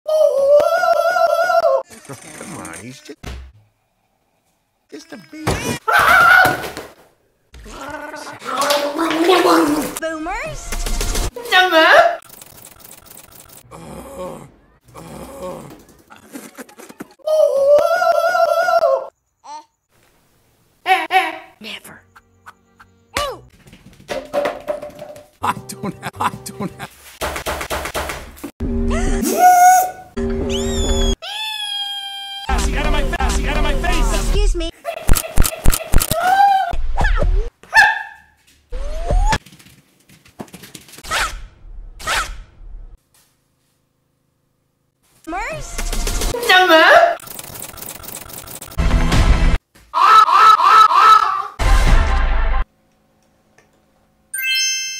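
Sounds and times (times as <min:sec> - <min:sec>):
person vocalizing: 0:07.6 - 0:09.9, 0:13.6 - 0:19.6, 0:28.9 - 0:30.0.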